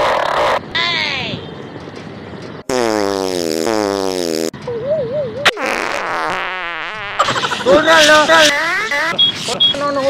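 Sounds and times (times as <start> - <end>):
fart sound effect: 2.7 - 4.6, 5.4 - 7.6.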